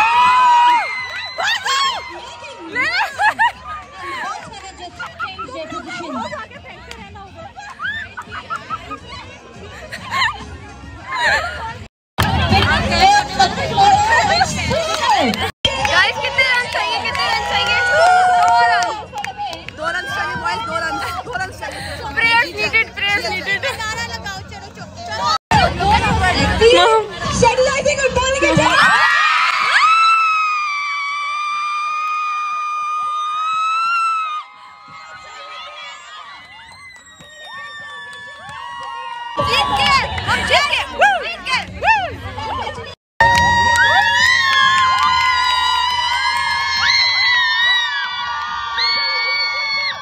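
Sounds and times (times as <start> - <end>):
young women talking and calling out: 1.5 - 8.1, 11.1 - 28.9, 39.4 - 43.0.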